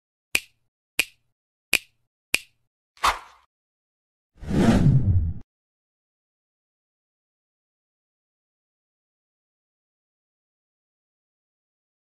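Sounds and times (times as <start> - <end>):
sharp snaps: 0.3 - 3.5.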